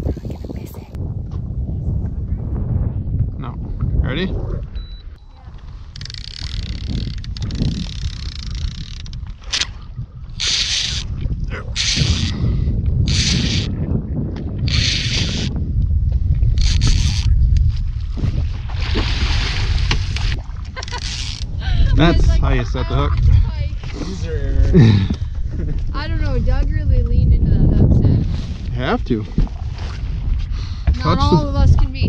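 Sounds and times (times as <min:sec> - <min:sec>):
wind rumble on microphone: 0:00.0 - 0:32.0
fishing reel cranking: 0:05.9 - 0:09.7, 0:10.4 - 0:11.1, 0:11.8 - 0:12.4, 0:13.1 - 0:13.7, 0:14.6 - 0:15.5, 0:16.6 - 0:17.3, 0:20.8 - 0:21.6.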